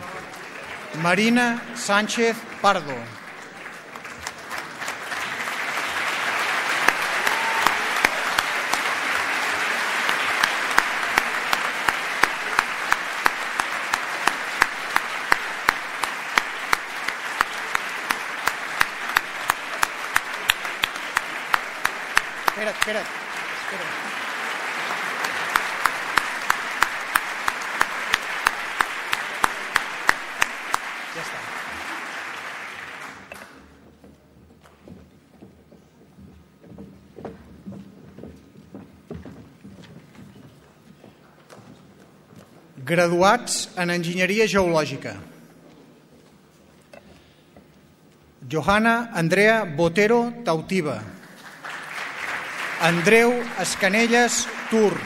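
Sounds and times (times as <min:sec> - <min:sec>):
audience applause in a hall: 0:00.0 - 0:34.0, 0:48.3 - 0:55.0.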